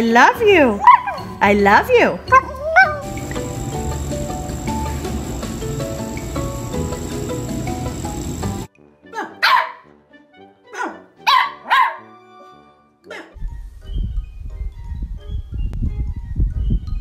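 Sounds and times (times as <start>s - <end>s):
background music: 0.0s - 17.0s
puppy barking: 0.8s - 1.4s, 2.6s - 3.1s, 9.3s - 9.9s, 10.7s - 12.2s
steady noise: 3.0s - 8.7s.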